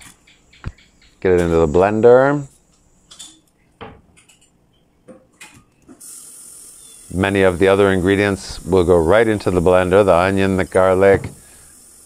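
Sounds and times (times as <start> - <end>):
faint steady hiss: 5.4 - 12.0.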